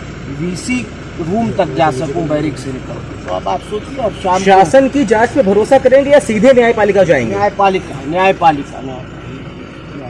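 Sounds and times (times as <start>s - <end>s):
men talking: 0.2s - 10.0s
steady low rumble: 0.6s - 4.8s.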